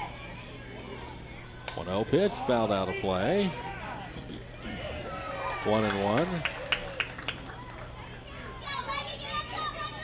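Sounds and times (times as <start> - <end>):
faint crowd chatter: 0.0 - 10.0.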